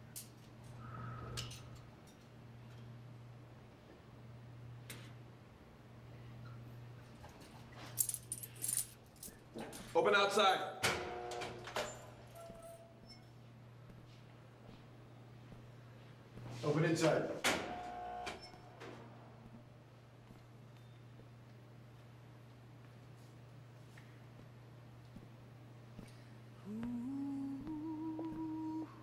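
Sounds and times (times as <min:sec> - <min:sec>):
low room hum: 0:00.0 - 0:29.0
keys jangling: 0:07.8 - 0:09.9
short vocal sound: 0:26.6 - 0:29.0.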